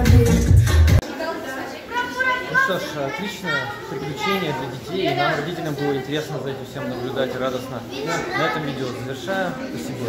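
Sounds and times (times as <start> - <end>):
children's voices and chatter: 1.0 - 10.0
man talking: 2.5 - 10.0.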